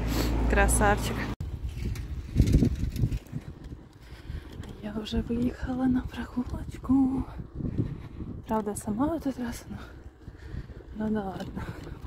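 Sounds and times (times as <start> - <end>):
bicycle riding over asphalt: 0.1 - 12.0
wind buffeting microphone: 1.2 - 12.0.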